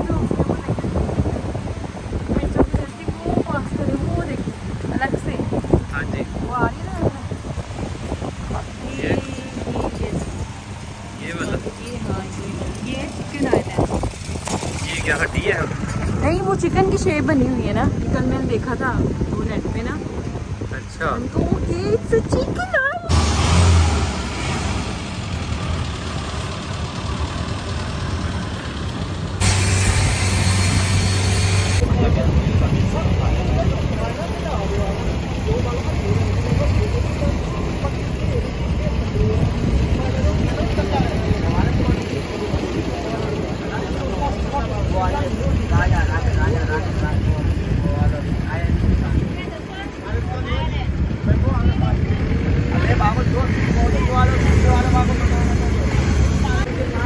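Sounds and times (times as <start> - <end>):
wind buffeting microphone: 0.0 - 24.2, 28.1 - 57.0
motorboat engine running: 25.4 - 52.3
loud hiss: 29.4 - 31.9.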